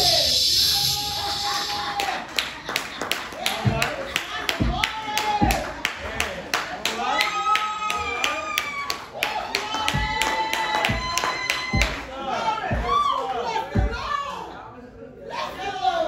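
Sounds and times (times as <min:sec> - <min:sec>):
rhythmic handclapping: 0:01.3 - 0:14.1.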